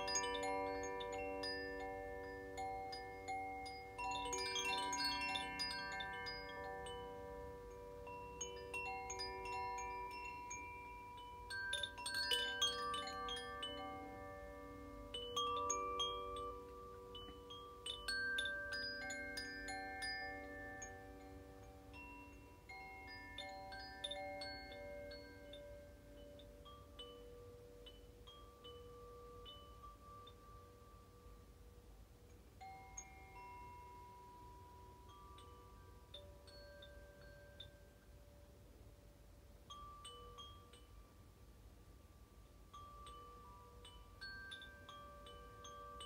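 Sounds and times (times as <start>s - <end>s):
chimes ringing softly: 0.0s - 46.0s.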